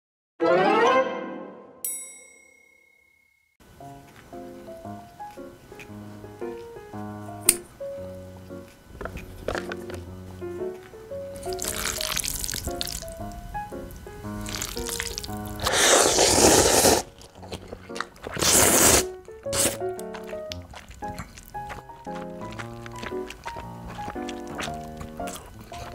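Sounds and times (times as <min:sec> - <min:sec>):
light plucked background music: 0:00.4 - 0:02.0, 0:03.8 - 0:25.9
chime: 0:01.8 - 0:03.6
noodle slurping: 0:11.4 - 0:13.1, 0:14.4 - 0:25.9.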